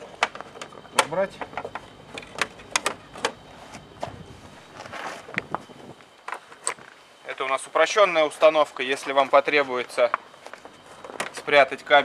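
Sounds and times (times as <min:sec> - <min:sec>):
rustling: 0:03.4 - 0:07.0.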